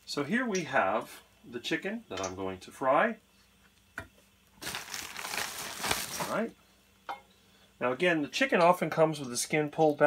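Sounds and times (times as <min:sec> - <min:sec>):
rustling crinkling handling noise: 0:04.5 - 0:06.5.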